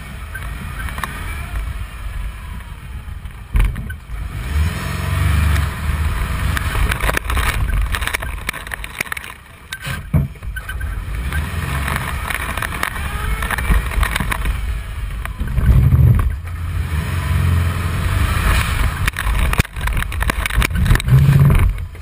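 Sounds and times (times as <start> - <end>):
car engine revving: 0.0 - 22.0
car knocks and rattles: 3.2 - 4.1, 6.5 - 16.6, 18.3 - 22.0
wind on microphone: 10.2 - 16.5, 17.7 - 22.0.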